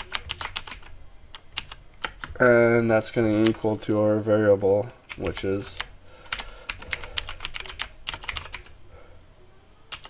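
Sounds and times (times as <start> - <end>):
keyboard typing: 0.0 - 2.4, 3.3 - 3.7, 5.0 - 8.8.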